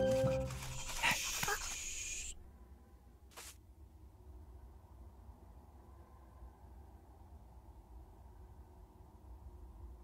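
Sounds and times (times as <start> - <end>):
cartoon animal vocal sounds: 0.7 - 2.4.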